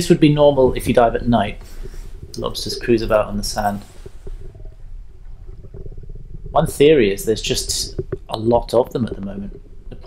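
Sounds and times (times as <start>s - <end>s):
fine crackle: 0.0s - 10.0s
underwater rumble of water: 0.0s - 10.0s.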